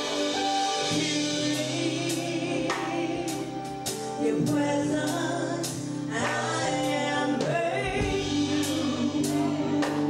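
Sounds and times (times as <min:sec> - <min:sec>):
held instrumental chords: 0:00.0 - 0:10.0
women's group singing gospel: 0:00.0 - 0:10.0.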